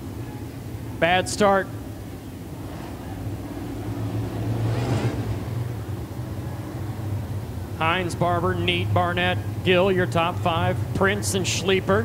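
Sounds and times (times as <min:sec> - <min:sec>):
race car engines accelerating: 0:00.0 - 0:12.0.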